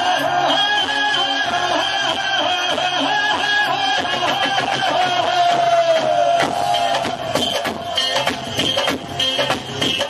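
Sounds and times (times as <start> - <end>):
man singing into microphone: 0.0 - 6.2
band accompaniment over pa: 0.0 - 10.0.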